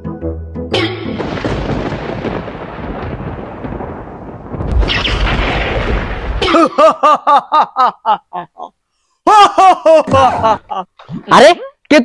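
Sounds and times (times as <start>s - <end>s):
thunder rumble: 1.2s - 6.5s.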